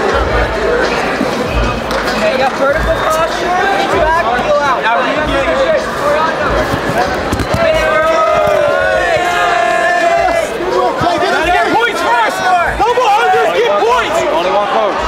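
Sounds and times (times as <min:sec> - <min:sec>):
people shouting: 0:06.9 - 0:15.0.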